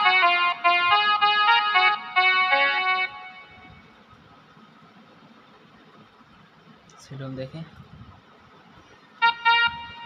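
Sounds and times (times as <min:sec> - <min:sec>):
mini keyboard notes: 0:00.0 - 0:04.1, 0:09.2 - 0:10.0.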